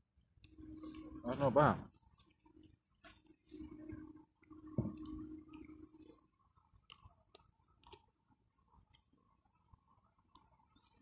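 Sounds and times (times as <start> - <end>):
low steady humming: 0.0 - 11.0
person chewing food: 6.9 - 8.1.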